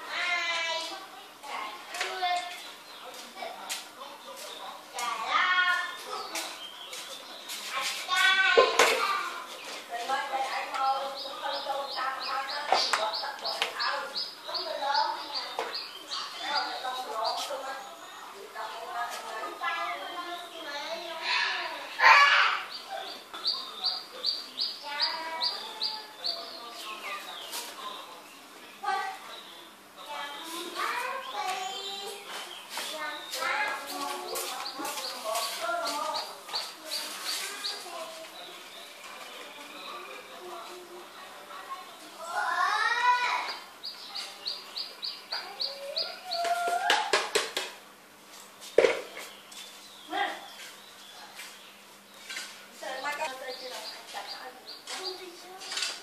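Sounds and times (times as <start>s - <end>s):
faint voices: 0.0s - 47.3s
small bird chirping: 9.4s - 21.3s, 22.5s - 42.1s, 43.4s - 46.8s, 48.3s - 56.0s.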